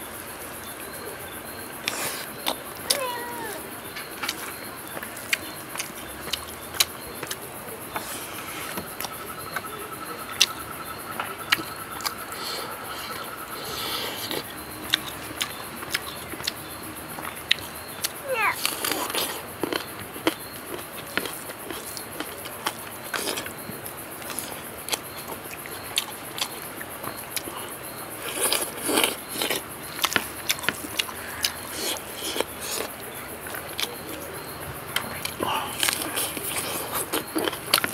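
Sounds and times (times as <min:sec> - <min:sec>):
chewing and lip-smacking: 0:04.0 - 0:09.7, 0:14.1 - 0:23.6, 0:24.2 - 0:37.9.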